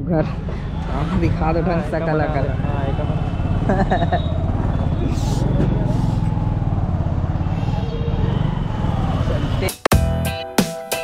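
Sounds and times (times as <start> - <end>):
motorcycle engine running: 0.0 - 9.9
loud plucked music: 9.9 - 11.0.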